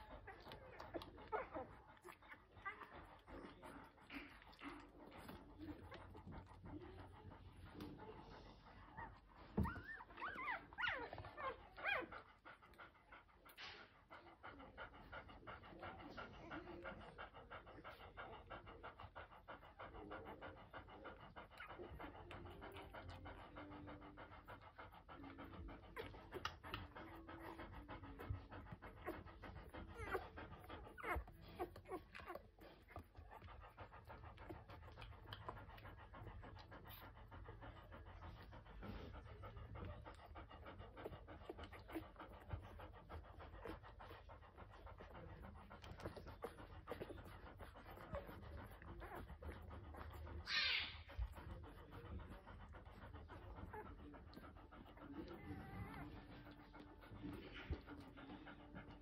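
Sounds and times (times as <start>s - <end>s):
dog panting: 0.0s - 59.0s
puppies squeaking: 9.0s - 12.2s, 29.0s - 33.5s, 47.9s - 51.8s.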